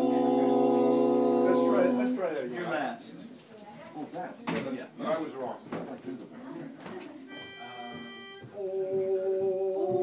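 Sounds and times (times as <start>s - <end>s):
barbershop voices singing chord: 0.0s - 2.3s, 7.9s - 10.0s.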